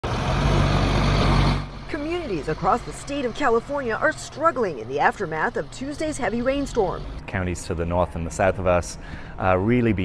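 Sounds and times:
diesel truck engine: 0:00.0 - 0:10.0.

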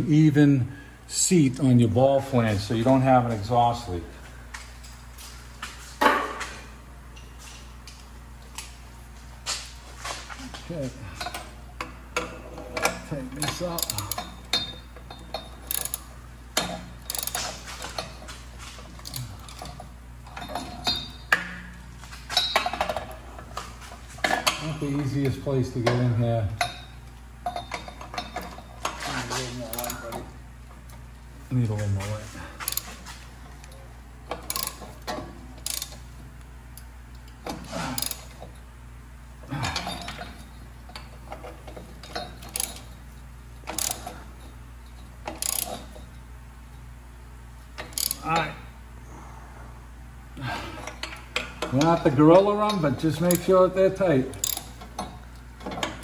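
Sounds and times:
ratchet wrench clicking: 0:13.4 - 0:18.1, 0:19.0 - 0:19.7, 0:29.7 - 0:30.1, 0:32.6 - 0:32.9, 0:34.3 - 0:36.0, 0:38.0 - 0:38.3, 0:42.4 - 0:42.9, 0:43.6 - 0:44.2, 0:45.2 - 0:46.0, 0:47.8 - 0:48.4, 0:53.1 - 0:53.5, 0:54.3 - 0:55.0.

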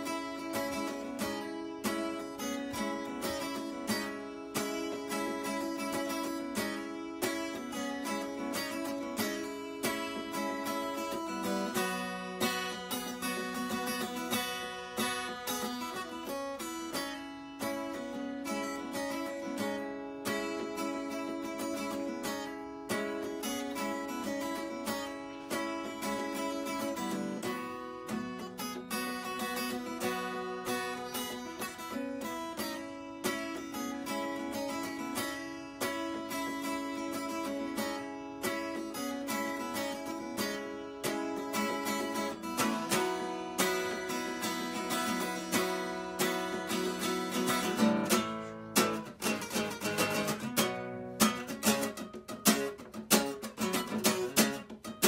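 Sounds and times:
acoustic guitar: 0:00.0 - 0:55.0.

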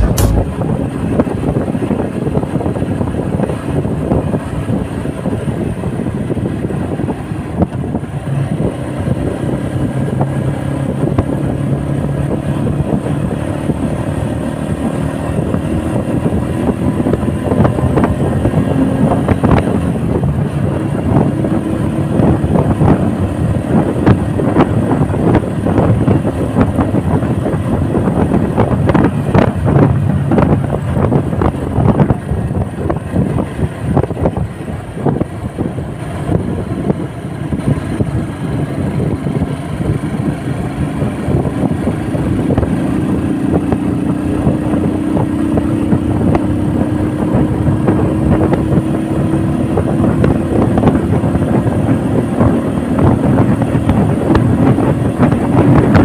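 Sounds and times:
motorcycle engine running: 0:00.0 - 0:56.0
wind rushing over microphone: 0:00.0 - 0:56.0.

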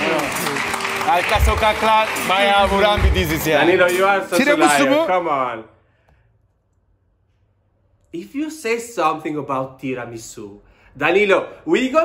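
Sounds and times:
person speaking: 0:02.5 - 0:05.3.

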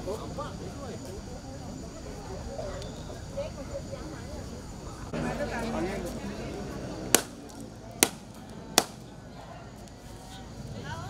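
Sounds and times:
murmur of voices: 0:00.0 - 0:11.0
sharp whacks of stick: 0:07.2 - 0:07.4, 0:08.0 - 0:08.2, 0:08.8 - 0:09.0.

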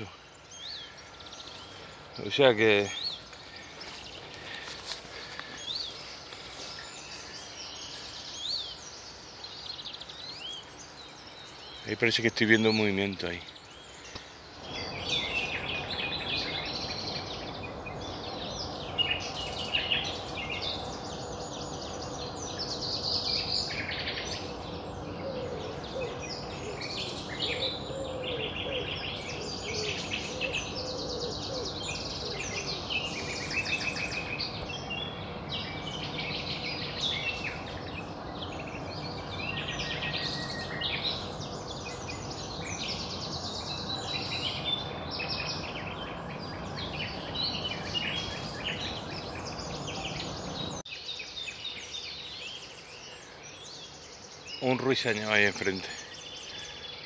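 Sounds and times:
nightingale singing: 0:00.0 - 0:57.0
songbirds singing: 0:00.0 - 0:57.0.

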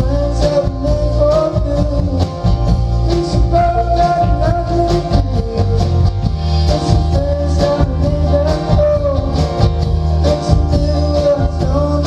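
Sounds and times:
bass: 0:00.0 - 0:12.0
electric guitar: 0:00.0 - 0:12.0
percussion beat: 0:00.0 - 0:12.0
person singing: 0:00.0 - 0:12.0.

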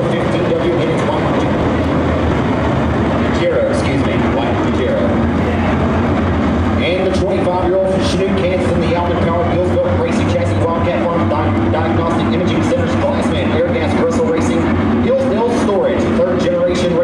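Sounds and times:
race car engines roaring: 0:00.0 - 0:17.0.

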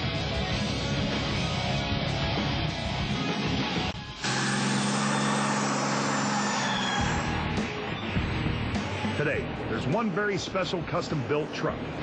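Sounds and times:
diesel engine at high revs: 0:04.2 - 0:07.8.

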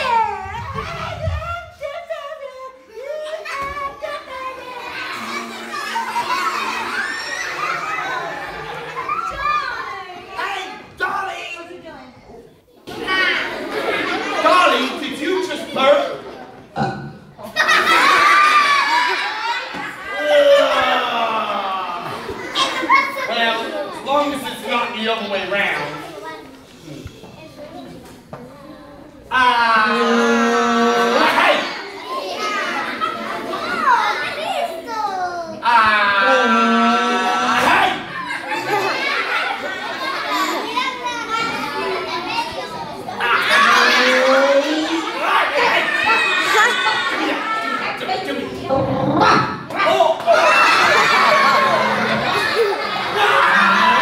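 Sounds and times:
crowd of children chattering: 0:00.0 - 0:54.0.

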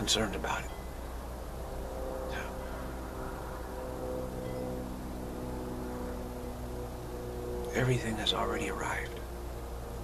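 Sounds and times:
low hum: 0:00.0 - 0:10.0
steady sustained tones: 0:00.0 - 0:10.0.

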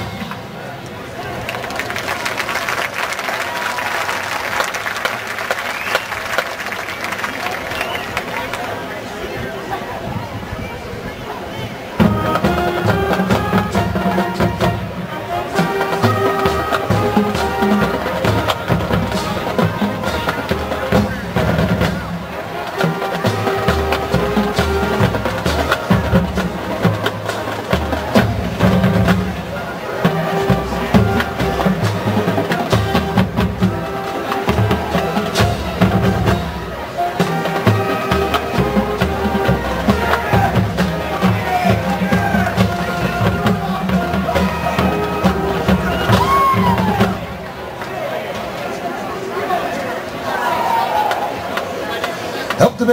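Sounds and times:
snare and bass drums: 0:12.0 - 0:47.5
brass melody: 0:12.0 - 0:47.7.

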